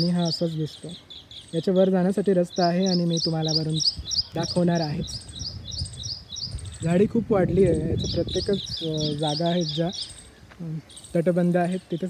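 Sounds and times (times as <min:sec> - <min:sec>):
man talking: 0:00.0 - 0:01.0, 0:01.6 - 0:05.2, 0:06.8 - 0:12.0
small bird chirping: 0:00.0 - 0:12.0.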